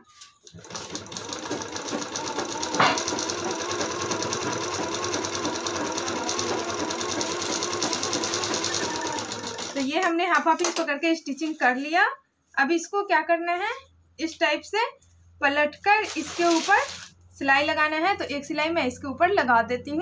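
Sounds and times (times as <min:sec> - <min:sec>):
sewing machine stitching: 0:00.1 - 0:10.1, 0:16.1 - 0:17.1.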